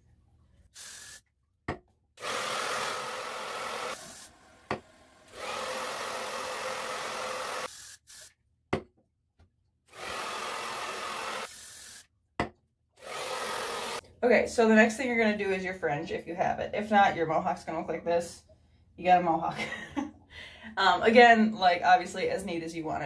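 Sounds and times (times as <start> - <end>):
aerosol spray hissing: 0.8 - 1.2, 7.6 - 8.3
blow dryer: 2.2 - 7.7, 9.9 - 11.6, 13.0 - 14.0.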